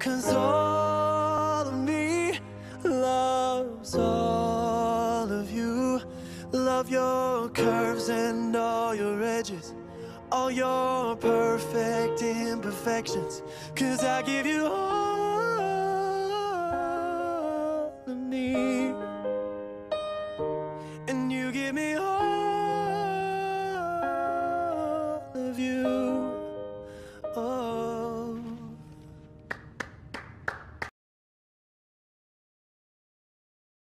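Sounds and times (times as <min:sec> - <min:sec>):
hand claps: 0:29.5 - 0:30.9.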